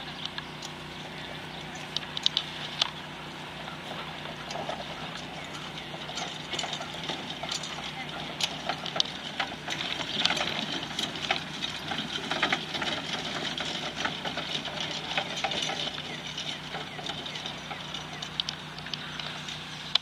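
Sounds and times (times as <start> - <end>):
steady outdoor hiss: 0.0 - 20.0.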